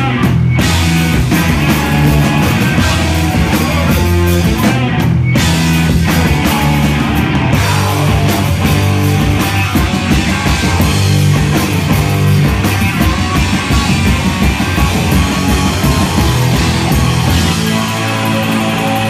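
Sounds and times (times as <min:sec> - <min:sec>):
heavy rock band playing: 0:00.0 - 0:19.0.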